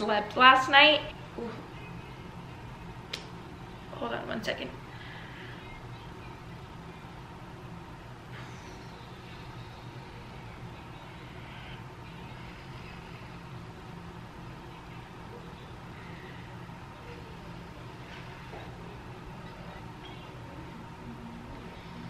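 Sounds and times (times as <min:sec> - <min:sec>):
low background hum: 0:00.0 - 0:22.0.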